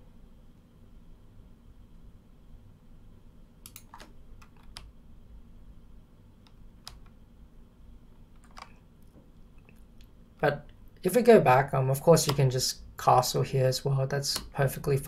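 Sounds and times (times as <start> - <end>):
low steady hum: 0.0 - 15.0
keyboard or mouse clicks: 3.6 - 4.9, 6.4 - 7.2, 8.4 - 8.8.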